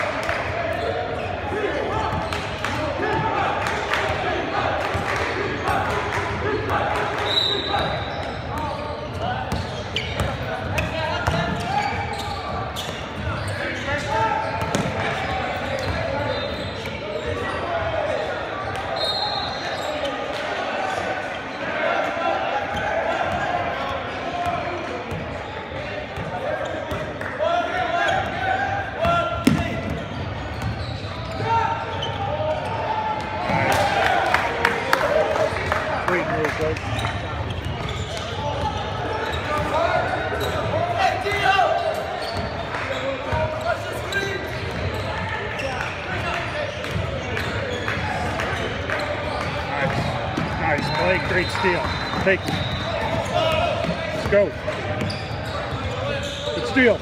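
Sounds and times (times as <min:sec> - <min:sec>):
basketball bouncing on gym floor: 0:14.6 - 0:15.1, 0:29.0 - 0:31.4.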